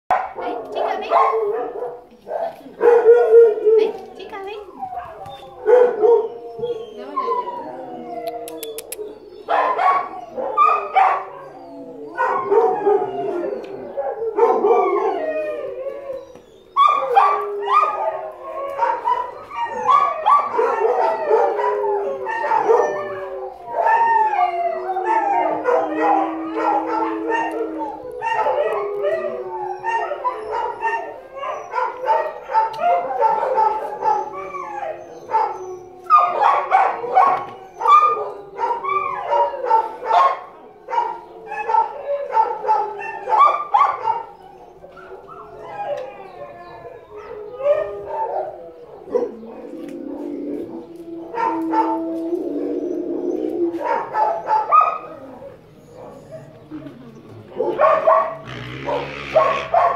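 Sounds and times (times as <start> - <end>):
dogs howling and barking: 0.1 - 59.9.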